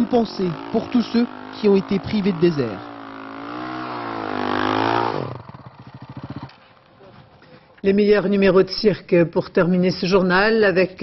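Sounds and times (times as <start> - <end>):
motorcycle engine revving: 0.0 - 7.4.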